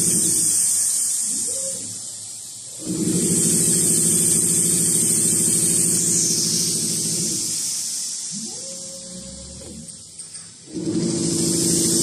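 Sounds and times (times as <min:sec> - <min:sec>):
steady high hiss: 0:00.0 - 0:02.8, 0:05.7 - 0:10.7
perforation machine mechanical hum: 0:00.0 - 0:12.0.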